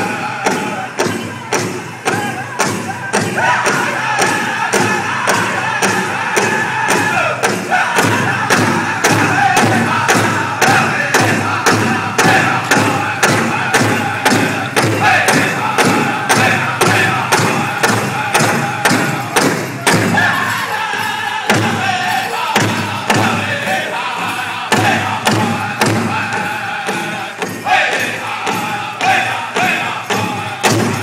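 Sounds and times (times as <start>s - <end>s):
high-pitched group singing: 0.0s - 31.0s
large drum beating: 0.0s - 31.0s.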